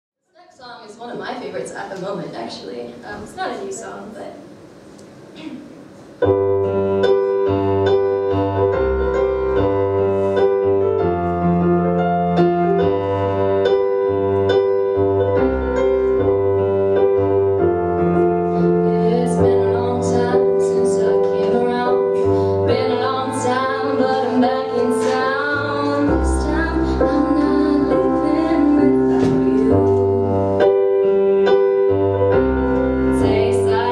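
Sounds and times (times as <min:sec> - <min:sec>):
slow piano chords: 0:05.3 - 0:33.9.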